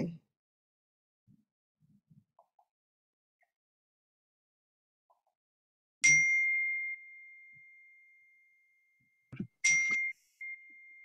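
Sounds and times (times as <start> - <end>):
high bell-like ding: 6.0 - 8.5, 9.6 - 11.0.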